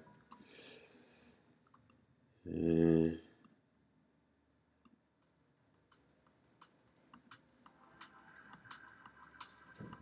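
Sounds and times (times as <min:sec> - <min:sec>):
computer mouse clicks: 0:00.0 - 0:02.1
person saying uh: 0:02.5 - 0:03.3.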